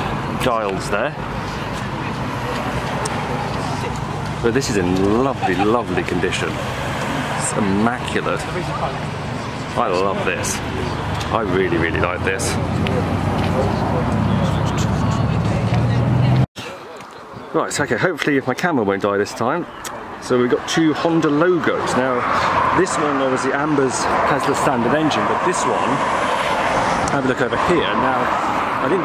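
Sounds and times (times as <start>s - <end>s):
vehicle passing close: 0.0s - 16.5s, 20.4s - 29.0s
faint voices: 0.0s - 29.0s.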